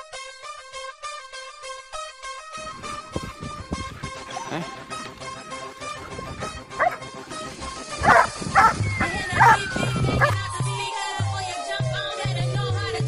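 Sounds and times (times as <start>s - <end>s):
background music: 0.0s - 13.0s
dog barking: 6.4s - 7.1s, 8.0s - 9.6s, 10.2s - 10.4s.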